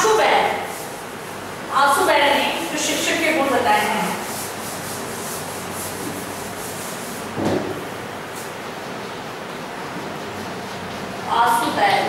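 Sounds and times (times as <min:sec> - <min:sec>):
duster scrubbing a blackboard: 0:00.0 - 0:09.0
knock: 0:07.4 - 0:07.8.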